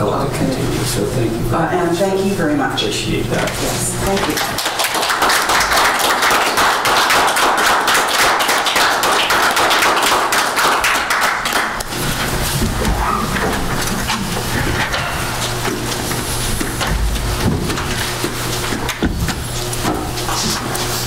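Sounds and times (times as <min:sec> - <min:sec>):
people applauding: 0:04.2 - 0:12.2.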